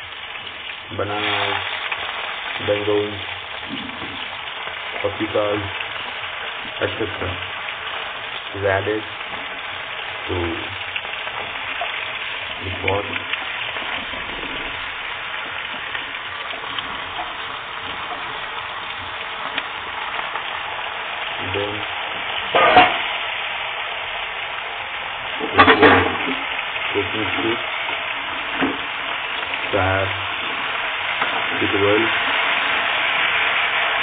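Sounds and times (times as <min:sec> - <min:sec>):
vegetables sizzling in hot oil: 0:00.0 - 0:34.0.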